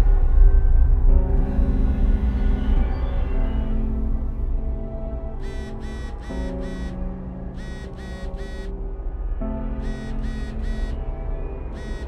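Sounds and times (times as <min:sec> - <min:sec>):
low dark ambient drone: 0:00.0 - 0:12.0
electronic beeping: 0:05.4 - 0:08.7, 0:09.8 - 0:11.0, 0:11.7 - 0:12.0.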